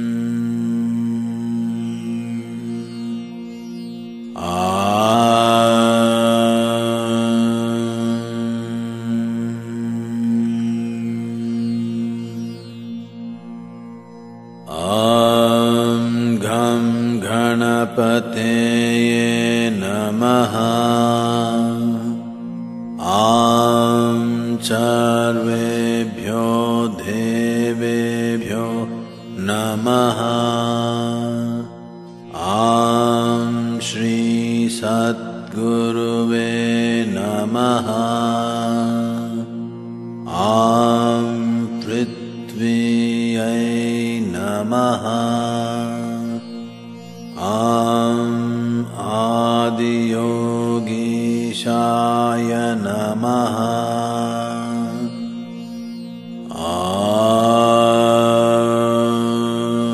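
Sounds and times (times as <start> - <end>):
man chanting: 4.4 - 12.6, 14.7 - 22.3, 23.0 - 46.6, 47.3 - 55.4, 56.5 - 59.9.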